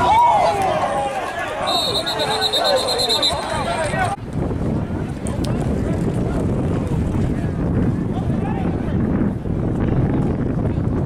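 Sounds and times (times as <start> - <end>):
wind buffeting microphone: 3.3 - 11.0.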